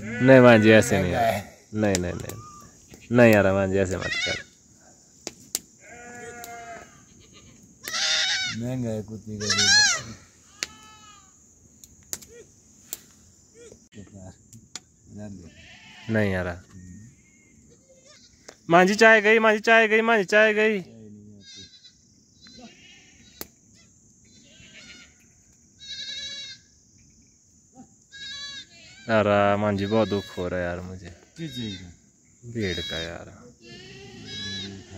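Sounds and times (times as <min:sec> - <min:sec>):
young sheep or goat bleating: 0:00.0 - 0:01.5, 0:03.8 - 0:04.6, 0:05.8 - 0:08.6, 0:09.4 - 0:11.4, 0:15.4 - 0:18.5, 0:21.3 - 0:26.7, 0:28.1 - 0:32.0, 0:32.6 - 0:34.9.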